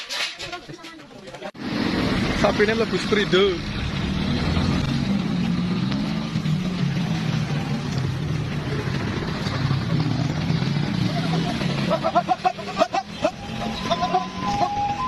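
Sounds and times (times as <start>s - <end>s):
voices: 9.7s - 15.0s
people calling out: 11.0s - 15.0s.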